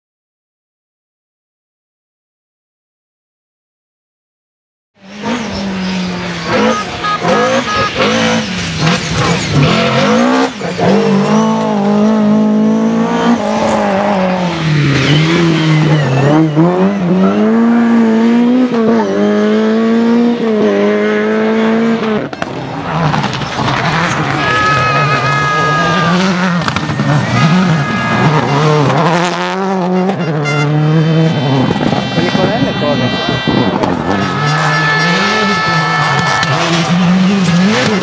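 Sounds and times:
rally car engines revving: 5.0 - 38.0.

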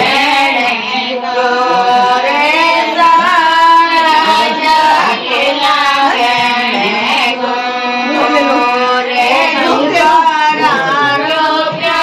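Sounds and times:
woman singing folk song: 1.7 - 12.0.

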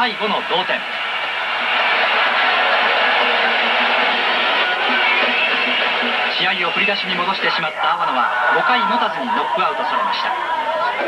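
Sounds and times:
music: 0.0 - 7.8
crowd cheering: 0.0 - 11.0.

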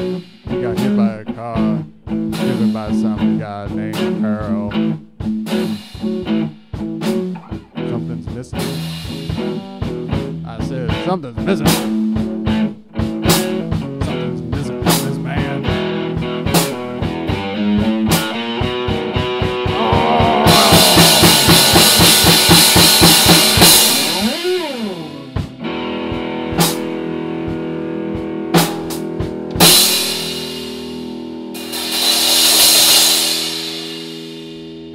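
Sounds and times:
drum hits: 0.0 - 34.5
guitar pitch slide: 17.4 - 26.1
ringing guitar chord: 19.6 - 25.4
cymbal wash: 29.9 - 34.9.

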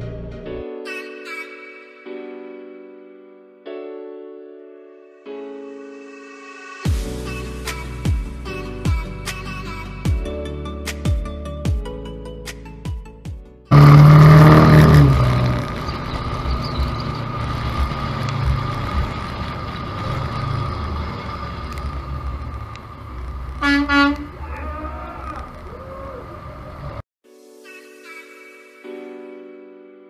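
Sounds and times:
diesel truck engine and road noise: 13.7 - 27.0
vehicle horn beep: 23.6 - 24.3.

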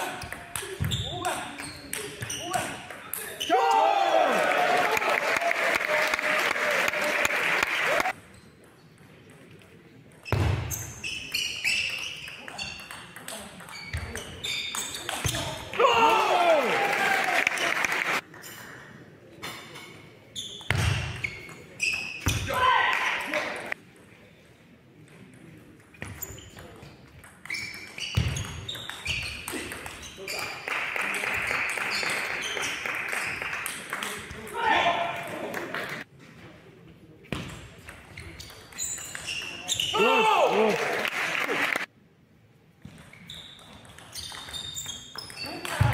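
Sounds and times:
loud shouts: 3.4 - 8.1, 15.8 - 17.8, 22.4 - 23.6, 39.9 - 41.0.

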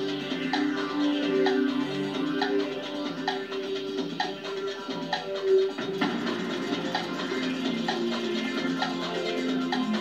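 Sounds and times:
clock ticking: 0.0 - 10.0
countdown clock music: 0.0 - 10.0.

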